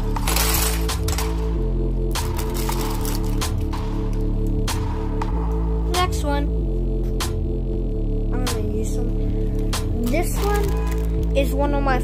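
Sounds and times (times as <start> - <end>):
background music with bass line: 0.0 - 12.0
plastic bricks pouring into tub: 0.2 - 1.3.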